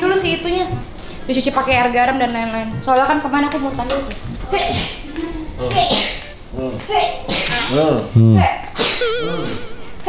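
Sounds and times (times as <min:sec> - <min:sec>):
warbling tone: 0:08.9 - 0:10.0.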